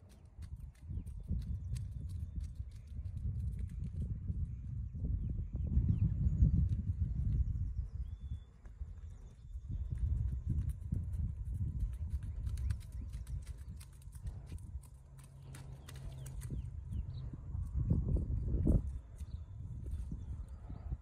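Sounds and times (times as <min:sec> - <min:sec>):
horse hoofbeats on sand: 0:08.7 - 0:17.1.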